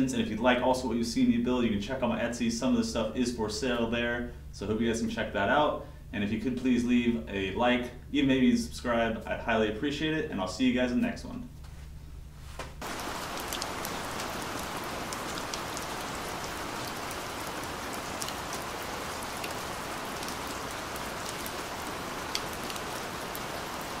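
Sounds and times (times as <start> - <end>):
steady rain: 12.8 - 24.0.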